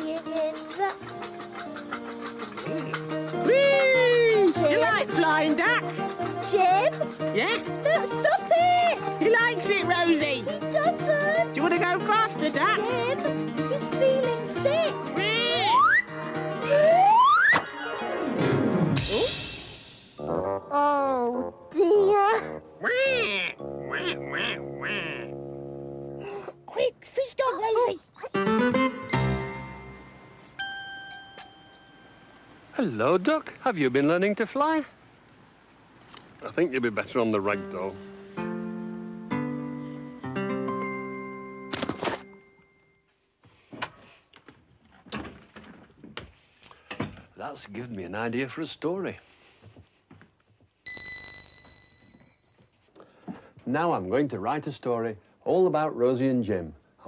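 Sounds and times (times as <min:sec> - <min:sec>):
puppet chattering voice: 0:00.0 - 0:16.0, 0:21.2 - 0:25.4
toy duck quacking: 0:22.8 - 0:25.4
children's tv music chord: 0:28.4 - 0:32.6
bright bell ding: 0:29.1 - 0:32.4, 0:50.9 - 0:52.8
faint shuffling movement: 0:47.3 - 0:50.8.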